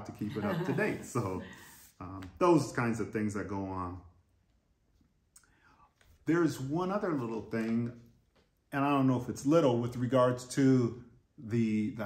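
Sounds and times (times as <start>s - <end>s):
soft breath: 1.4s - 2.0s.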